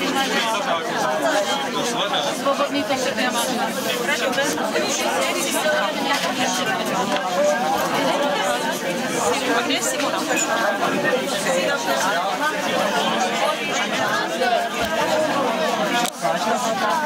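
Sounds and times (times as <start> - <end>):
babble of conversation: 0.0 - 17.0.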